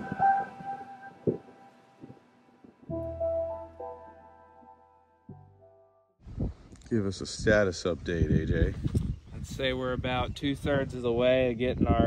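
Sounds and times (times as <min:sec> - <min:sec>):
background music sustained notes: 0:00.0 - 0:06.2.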